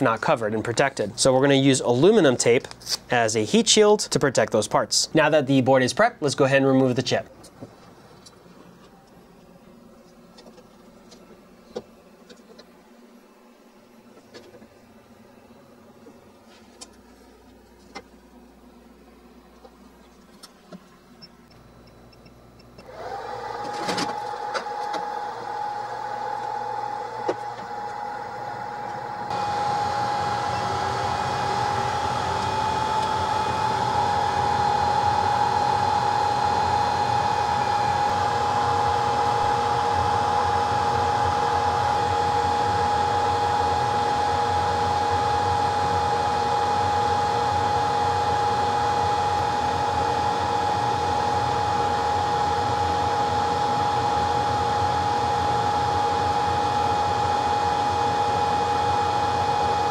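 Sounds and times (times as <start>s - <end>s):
hot-air blower rushing with fan whine: 0.0s - 21.8s, 22.4s - 59.9s.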